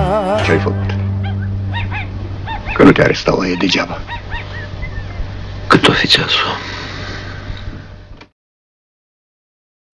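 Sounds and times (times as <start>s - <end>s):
steady low hum: 0.0s - 8.3s.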